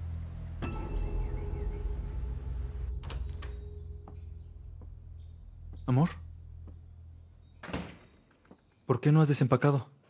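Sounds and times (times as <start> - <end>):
low background music: 0.0 - 8.6.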